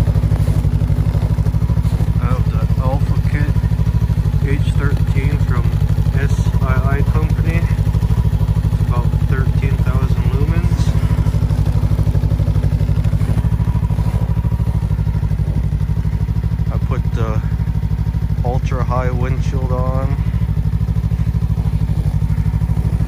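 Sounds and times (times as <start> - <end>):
snowmobile engine idling: 0.0 - 23.0.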